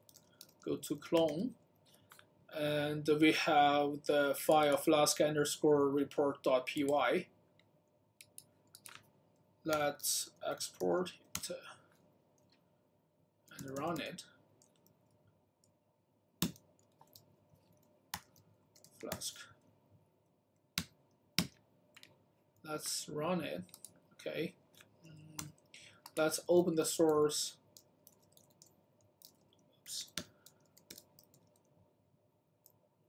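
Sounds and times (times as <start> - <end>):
computer keyboard clicking: 0.0 - 0.6, 16.4 - 19.2, 27.8 - 31.7.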